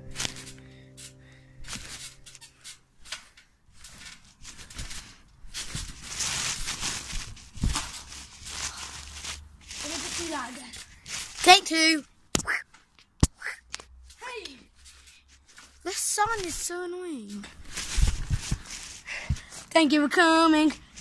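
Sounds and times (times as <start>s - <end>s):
background music: 0.0s - 2.4s.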